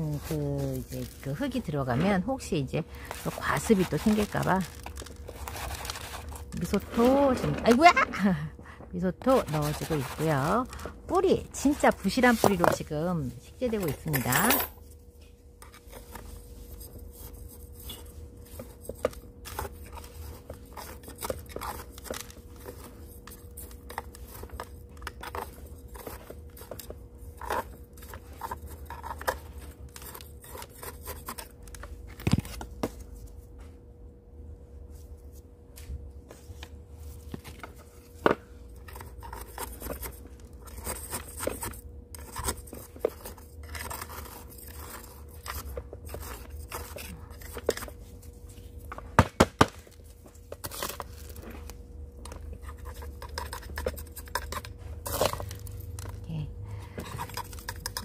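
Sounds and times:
spoon scraping potting mix: 0.0 - 8.0, 9.2 - 14.9, 15.6 - 31.6, 38.7 - 48.9, 50.5 - 56.3, 57.0 - 58.0.

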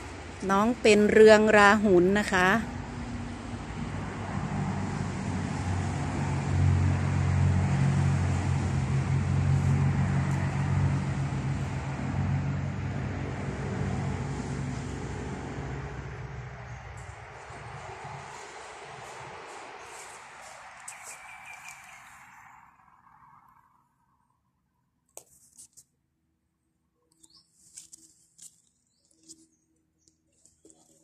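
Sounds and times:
vehicle engine humming: 0.0 - 24.0.

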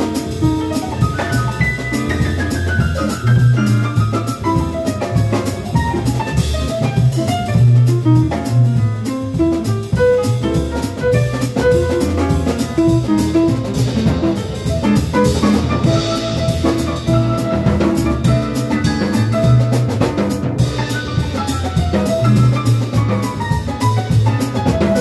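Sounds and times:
drum kit with cymbals: 0.0 - 25.0
upright bass line: 0.0 - 25.0.

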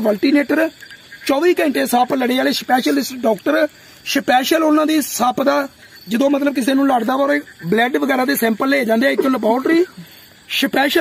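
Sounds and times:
man speaking in strained voice: 1.3 - 11.0.

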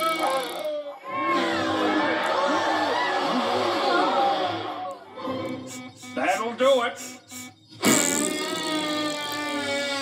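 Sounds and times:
steady buzzing tone: 5.5 - 8.5
cartoon hiss: 7.0 - 8.6.

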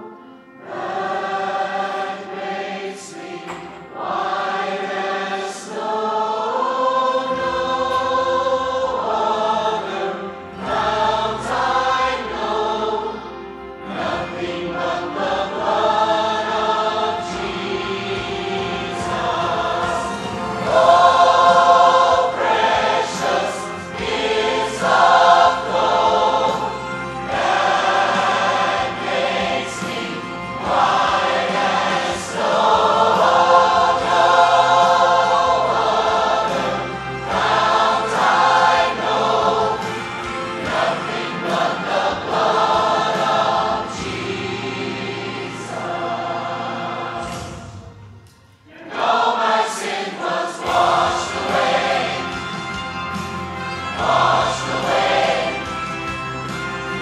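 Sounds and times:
choir singing worship song: 0.0 - 57.0.

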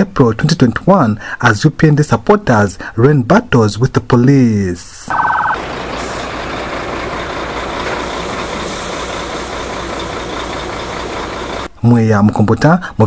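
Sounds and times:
street noise: 5.1 - 11.7
truck engine running: 5.1 - 11.7.

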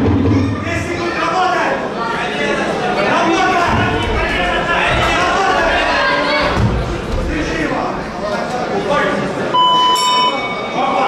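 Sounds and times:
crowd voices: 0.0 - 11.0
bell ringing: 9.6 - 11.0.

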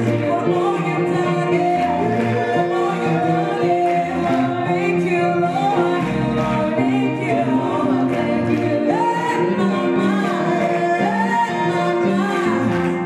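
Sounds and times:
gospel choir singing in harmony: 0.0 - 13.0.

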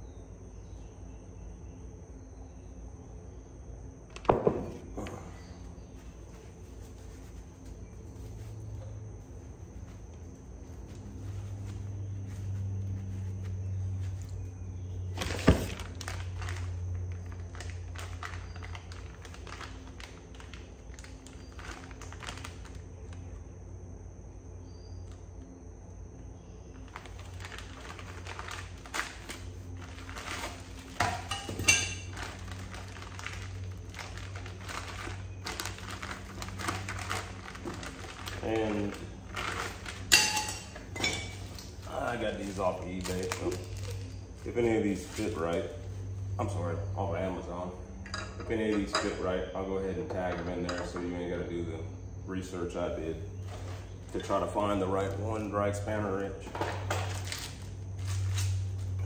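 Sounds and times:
steady low hum: 0.0 - 59.0
metal tools clinking and knocking: 31.0 - 32.2, 40.1 - 41.6, 48.1 - 49.2.

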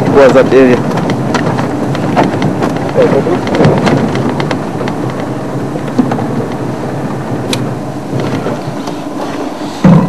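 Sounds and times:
vehicle engine and road rumble: 0.0 - 10.0.

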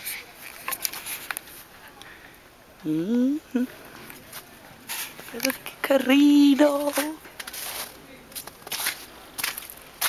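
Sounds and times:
footsteps crunching in snow: 6.8 - 10.0.

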